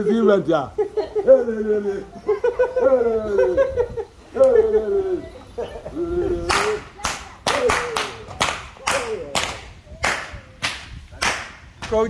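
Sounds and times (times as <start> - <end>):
faint voices: 0.0 - 11.3
rope whips cracking: 6.5 - 12.0.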